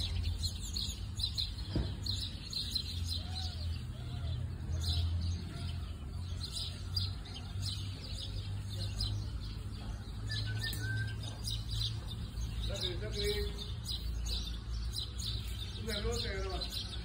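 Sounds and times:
small birds chirping: 0.0 - 17.0.

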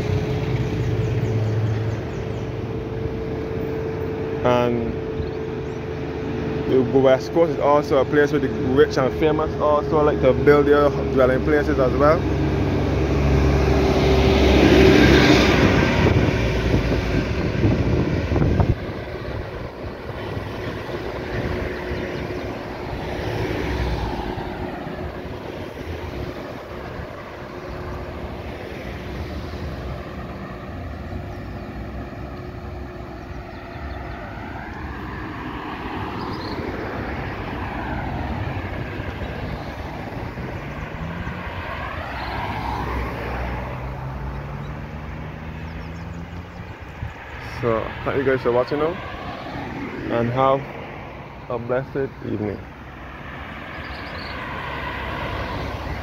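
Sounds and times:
cars passing close by: 0.0 - 56.0
steady traffic hum: 0.0 - 56.0.

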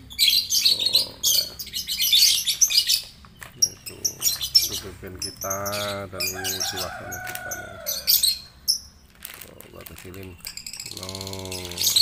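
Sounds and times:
lovebirds twittering: 0.0 - 12.0.

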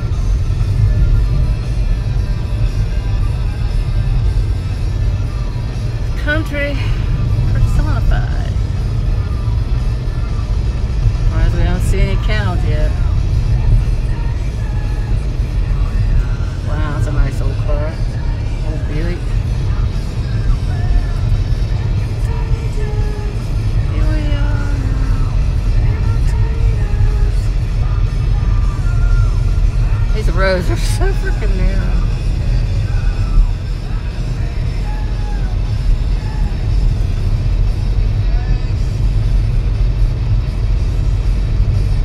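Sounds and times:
car cabin road rumble: 0.0 - 42.0
music with singing voice: 0.0 - 42.0.

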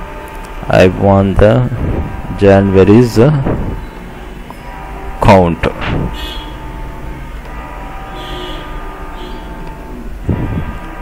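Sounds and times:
steady background hum: 0.0 - 11.0.

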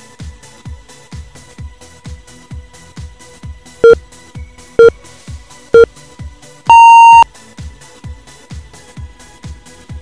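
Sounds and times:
timer countdown beeps: 6.7 - 7.2.

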